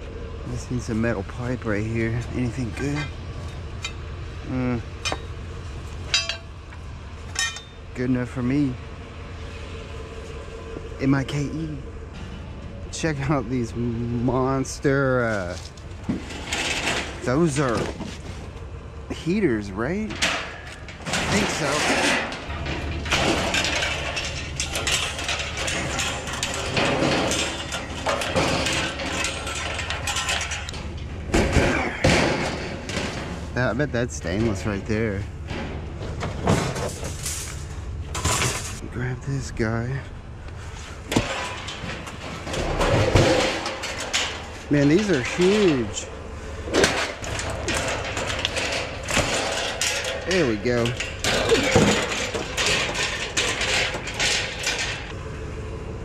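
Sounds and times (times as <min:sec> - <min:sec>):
low steady hum: 0:00.0 - 0:56.0
sheet metal rattling and clanking: 0:00.2 - 0:38.8, 0:41.0 - 0:55.2
metal heater knocks and scrapes: 0:12.1 - 0:38.8, 0:40.9 - 0:55.2.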